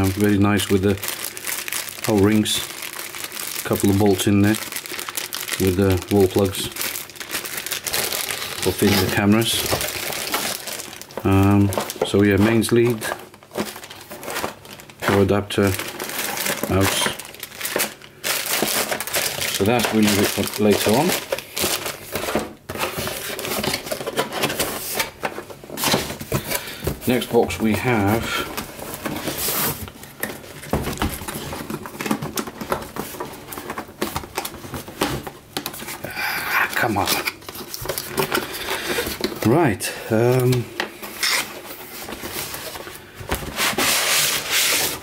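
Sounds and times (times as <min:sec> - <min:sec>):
plastic bag crinkling: 0:00.0 - 0:45.0
cardboard box rustling: 0:04.8 - 0:36.0.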